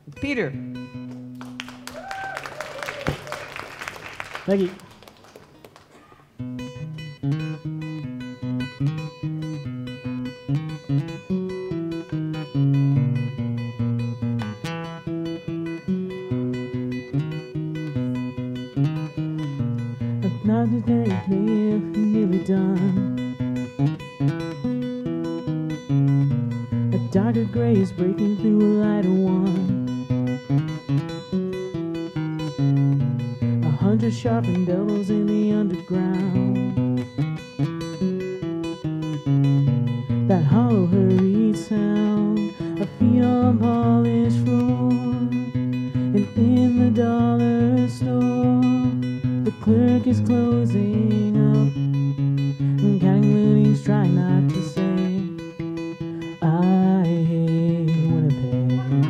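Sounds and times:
solo acoustic guitar: 0.0 - 1.9, 5.4 - 59.0.

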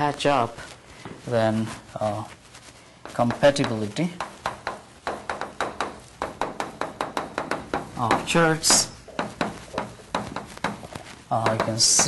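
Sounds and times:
chalk tapping on a blackboard: 3.0 - 12.0.

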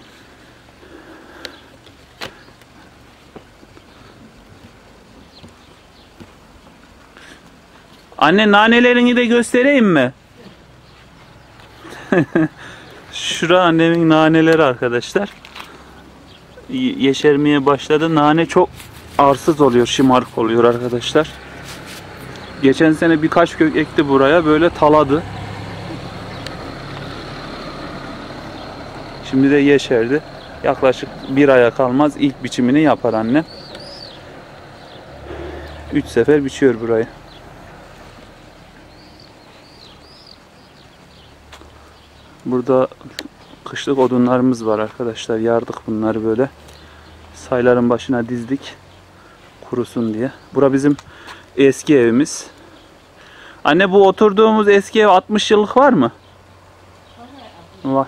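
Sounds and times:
faint outdoor background: 0.0 - 58.0
footsteps on dry ground: 1.6 - 8.2, 12.8 - 23.2, 35.6 - 42.4, 43.2 - 45.2.

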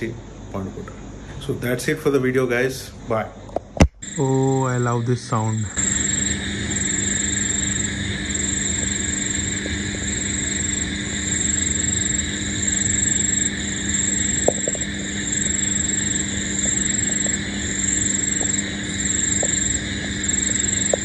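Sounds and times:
high insect trill: 0.0 - 21.0
low steady hum: 0.0 - 21.0.

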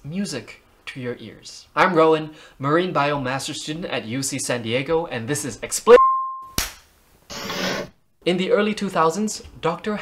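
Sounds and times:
sharp snap: 6.5 - 6.9.

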